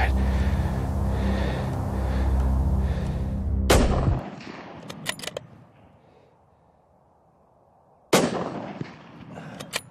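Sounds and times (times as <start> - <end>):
music with low sustained tones: 0.0 - 4.3
rifle shot: 3.7 - 5.4, 8.1 - 9.4.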